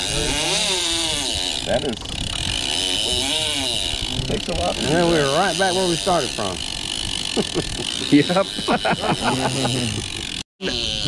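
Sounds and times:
fishing reel mechanical buzz: 0.0 - 11.0.

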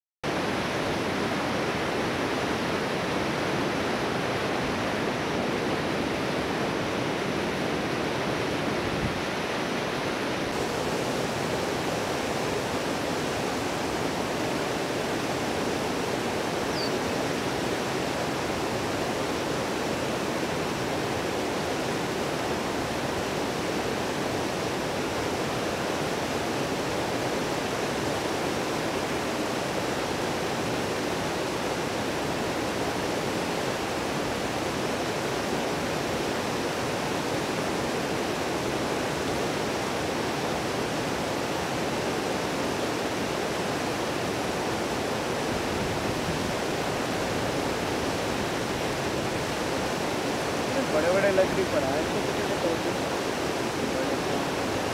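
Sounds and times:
stream rushing: 0.2 - 54.9.

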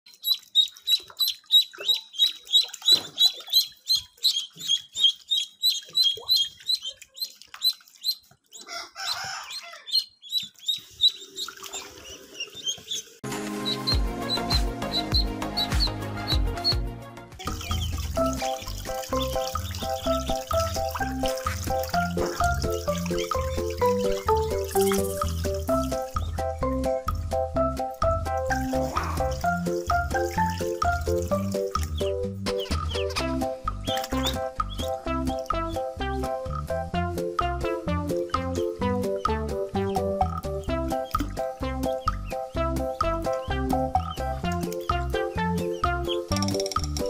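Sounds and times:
ducklings peeping: 0.1 - 16.8, 17.4 - 26.8, 28.2 - 36.6, 37.4 - 46.6
music with steady beat: 13.2 - 47.0.

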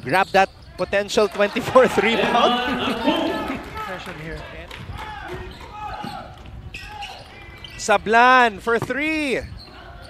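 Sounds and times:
voices calling out: 0.0 - 8.1.

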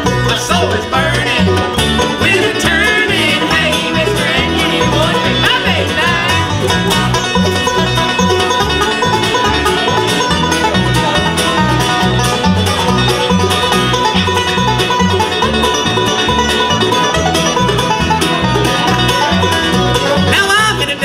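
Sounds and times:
bluegrass band playing: 0.0 - 21.0
upright bass low notes: 0.0 - 21.0.

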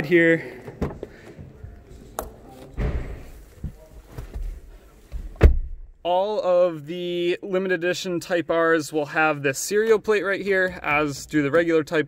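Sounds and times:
rustling and handling noise: 1.0 - 5.4.

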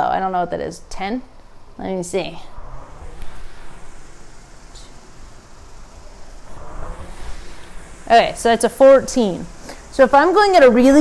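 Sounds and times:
rowing machine flywheel whirring: 0.0 - 11.0.

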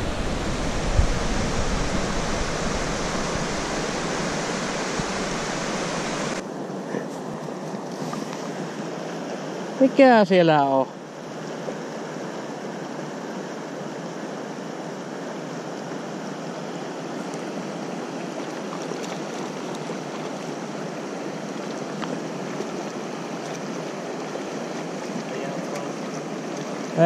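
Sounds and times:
river water flowing: 0.0 - 27.0.

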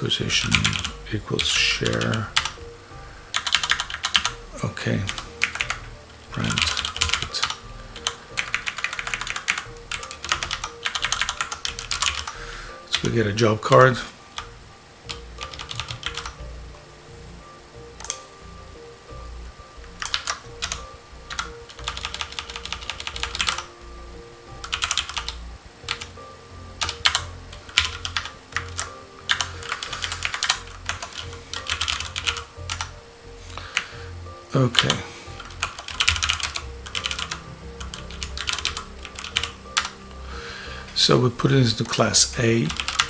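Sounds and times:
typing on computer keyboard: 0.4 - 1.0, 1.8 - 2.6, 3.3 - 4.4, 5.1 - 13.1, 15.1 - 16.4, 20.0 - 23.6, 24.6 - 26.1, 26.8 - 32.9, 34.8 - 40.0, 42.7 - 43.0.

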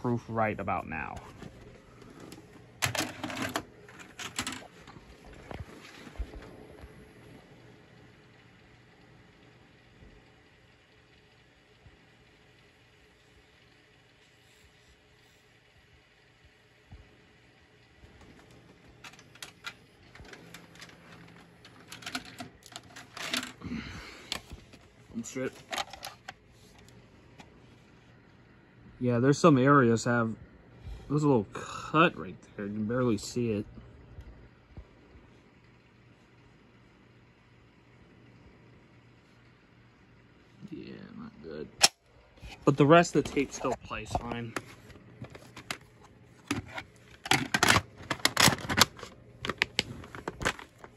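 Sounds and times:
faint hum: 0.0 - 50.9.

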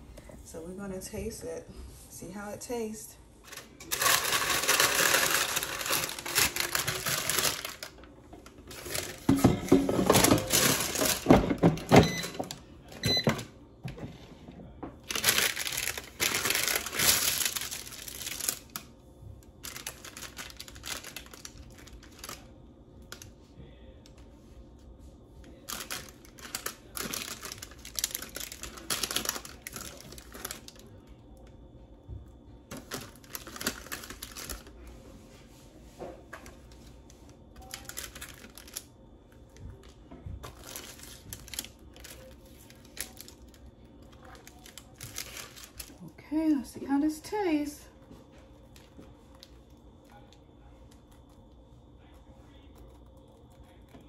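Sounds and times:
parchment paper crinkling: 3.4 - 9.4, 15.0 - 23.4, 25.4 - 31.2, 32.7 - 35.6, 36.4 - 46.1.

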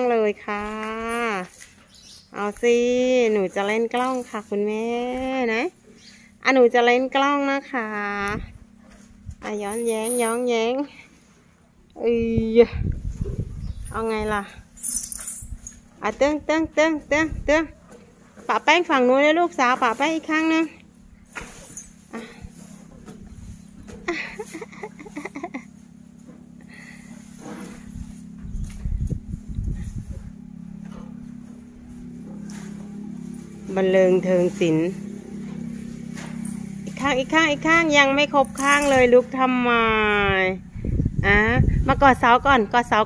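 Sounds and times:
woman speaking: 0.0 - 1.6, 2.3 - 5.8, 6.4 - 8.5, 9.4 - 11.0, 12.0 - 12.8, 13.9 - 14.6, 16.0 - 17.8, 18.5 - 20.8, 33.7 - 35.1, 36.9 - 43.0
steady low hum: 0.0 - 43.0
low rumbling noise: 22.0 - 43.0.

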